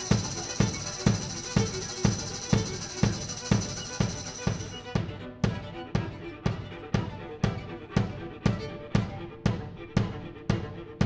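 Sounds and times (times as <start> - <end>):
bowed strings: 0.0 - 11.0
drum struck steadily: 0.0 - 11.0.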